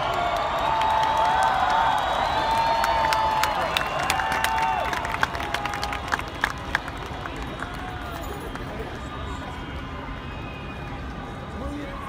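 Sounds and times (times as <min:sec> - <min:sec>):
crowd cheering and clapping: 0:00.0 - 0:09.9.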